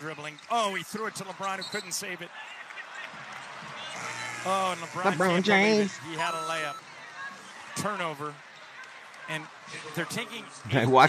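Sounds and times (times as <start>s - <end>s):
arena noise: 0.0s - 11.0s
commentator speaking: 4.5s - 6.8s, 9.9s - 11.0s.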